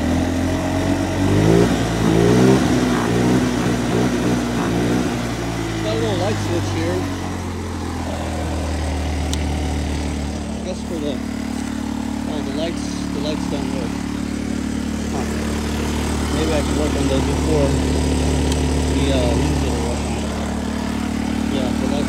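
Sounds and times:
go-kart engine revving: 0.0s - 22.0s.

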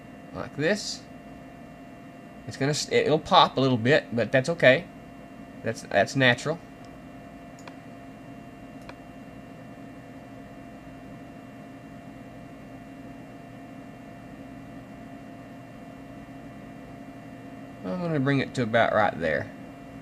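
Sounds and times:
electrical hum and hiss: 0.0s - 20.0s.

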